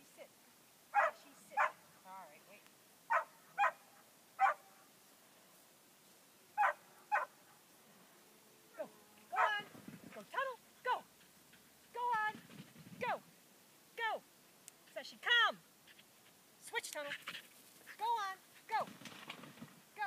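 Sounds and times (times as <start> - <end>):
dog barking: 1.0 - 1.8, 3.1 - 4.8, 6.6 - 7.4, 9.3 - 9.6.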